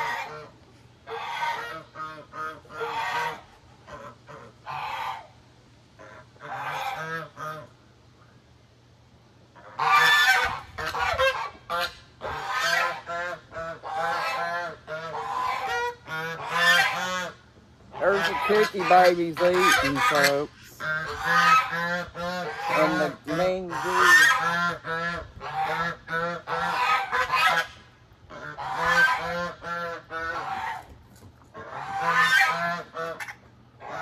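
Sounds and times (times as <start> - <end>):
geese honking: 0.0 - 5.4, 6.0 - 7.8, 9.5 - 34.0.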